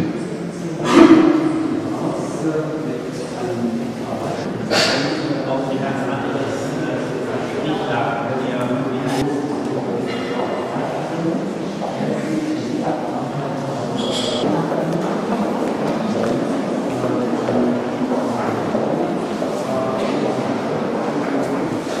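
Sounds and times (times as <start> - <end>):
crowd chatter in a large hall: 0.0 - 22.0.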